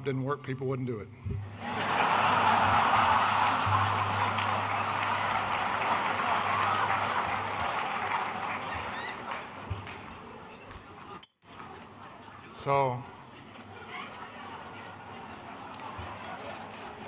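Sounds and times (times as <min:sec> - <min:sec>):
large audience laughing: 0:01.5 - 0:10.2, 0:11.6 - 0:17.0.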